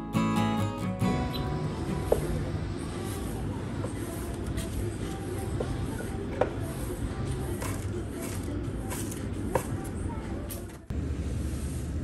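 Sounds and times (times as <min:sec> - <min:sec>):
broom sweeping tile floor: 0:01.7 - 0:12.0.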